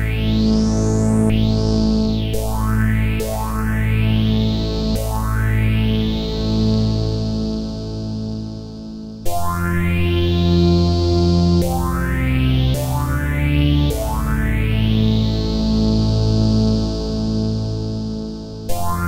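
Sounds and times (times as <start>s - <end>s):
synthesizer notes with phaser sweep: 0.0s - 19.0s.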